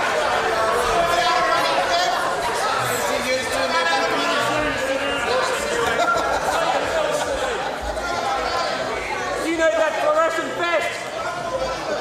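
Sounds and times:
many voices chattering: 0.0s - 12.0s.

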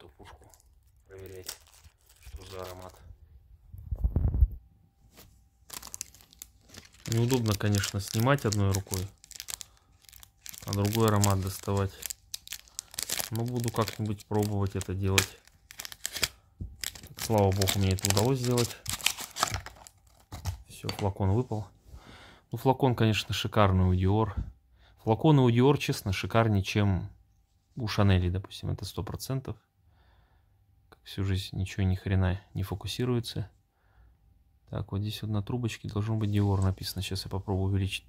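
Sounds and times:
wrapping crinkling and tearing: 0.0s - 3.1s, 5.1s - 20.6s.

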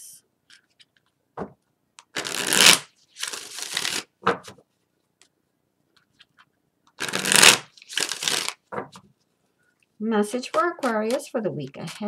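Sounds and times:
cards being shuffled: 2.0s - 4.6s, 5.9s - 9.0s, 10.3s - 12.0s.

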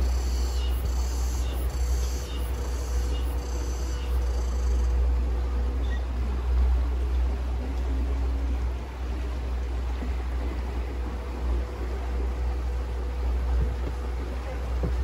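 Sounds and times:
boat engine rumble: 0.0s - 15.0s
water wash: 0.0s - 15.0s.

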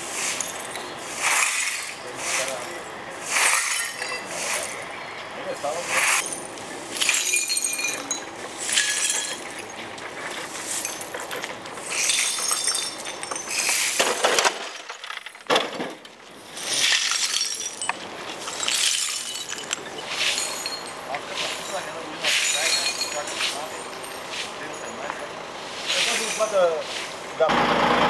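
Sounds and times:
glass bottles clinking and breaking: 3.4s - 5.0s, 6.2s - 25.1s.

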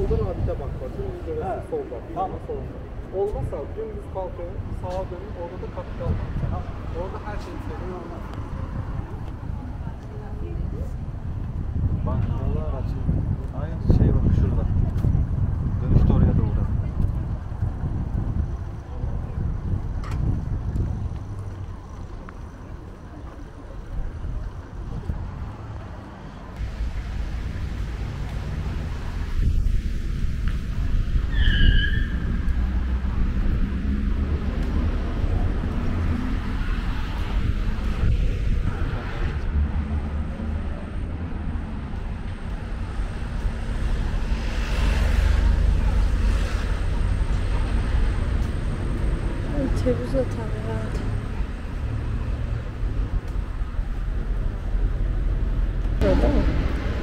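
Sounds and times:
city street traffic rumble: 0.0s - 57.0s
faint voices: 56.0s - 57.0s.

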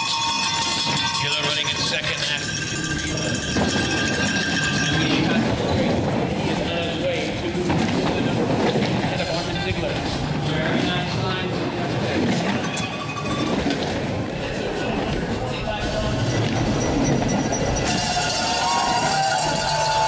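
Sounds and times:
sled rumbling down ice track: 0.0s - 20.0s
spectators shouting and cheering: 17.4s - 20.0s.

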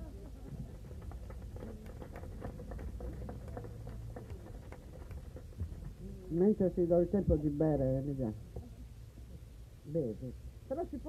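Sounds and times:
small audience clapping: 0.0s - 5.9s.

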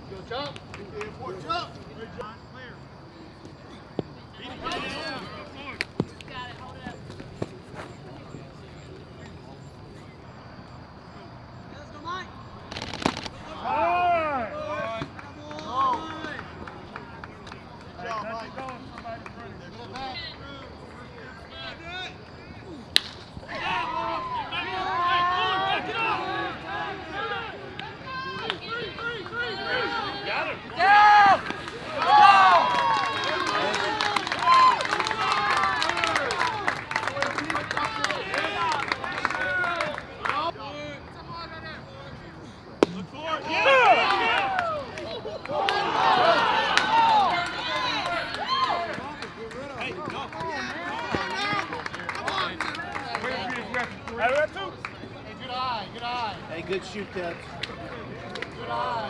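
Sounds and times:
crowd cheering: 11.0s - 41.6s, 42.8s - 59.0s
spectators shouting: 13.4s - 16.4s, 21.6s - 40.5s, 43.1s - 53.5s
bat hitting ball: 22.9s - 23.4s.

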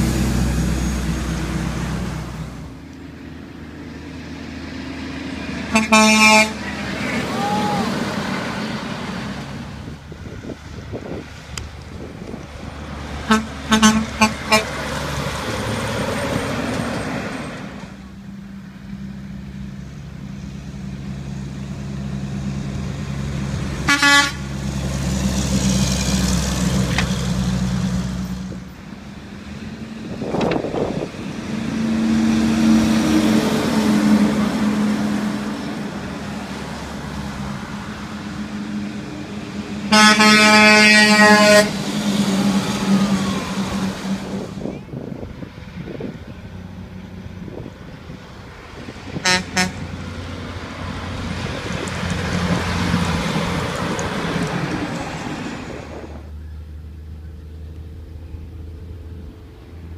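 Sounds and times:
diesel trucks passing: 0.0s - 59.9s
truck horn honks: 5.7s - 7.4s, 13.2s - 14.8s, 23.8s - 24.4s, 39.9s - 41.8s, 49.2s - 49.9s.

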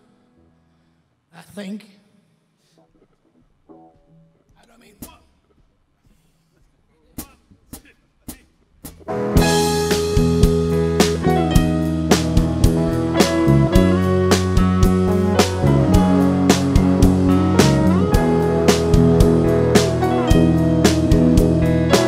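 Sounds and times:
rock band playing: 8.9s - 22.0s
faint electric guitar notes: 9.1s - 22.0s.

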